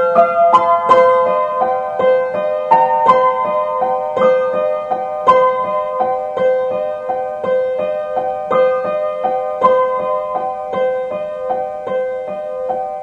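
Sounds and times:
out-of-tune piano playing waltz: 0.0s - 13.0s.

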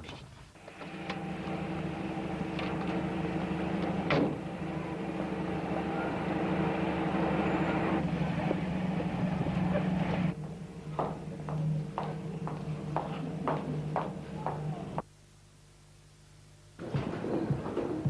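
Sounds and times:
car engine running: 0.8s - 15.0s.

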